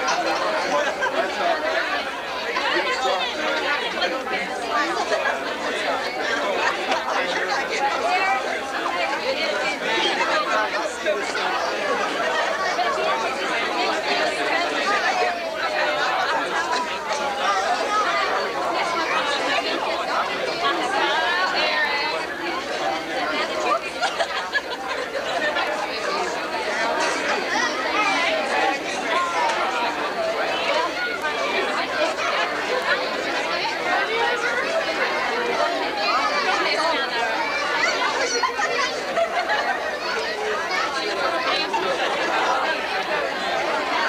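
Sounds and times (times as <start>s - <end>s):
crowd chatter: 0.0s - 44.0s.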